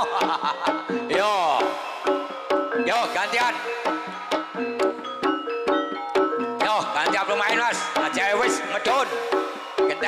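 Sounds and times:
drum strikes: 0:00.0 - 0:10.0
gamelan music: 0:00.0 - 0:10.0.

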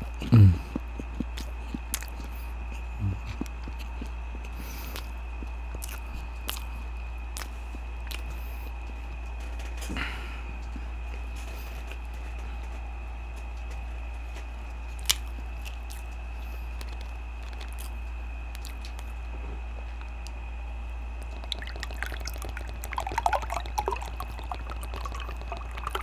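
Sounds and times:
chewing food: 0:00.0 - 0:09.1, 0:14.4 - 0:19.3, 0:21.2 - 0:26.0
steady low hum: 0:00.0 - 0:26.0
soft mouth clicks: 0:05.8 - 0:06.7, 0:07.4 - 0:08.3.

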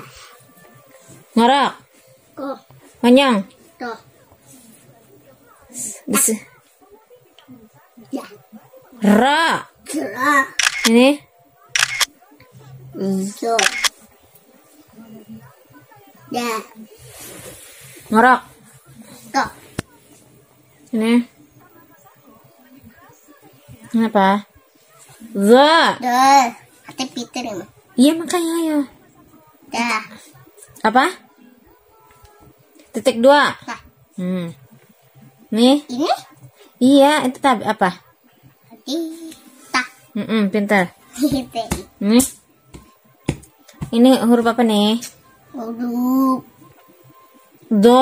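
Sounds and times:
sharp clicks: 0:10.6 - 0:10.9, 0:11.8 - 0:12.1.

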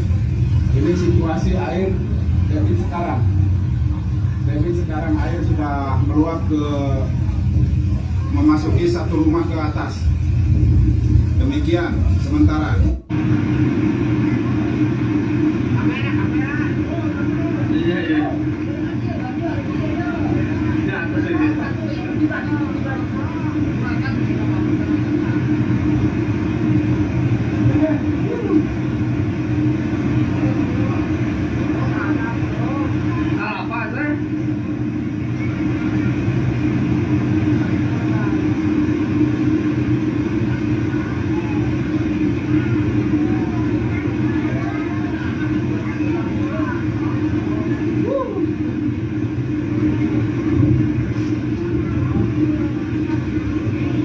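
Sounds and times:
faint voices: 0:11.3 - 0:54.0.

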